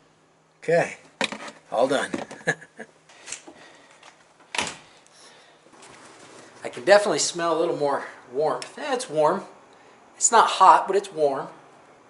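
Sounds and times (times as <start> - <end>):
person laughing: 2.3 - 2.9.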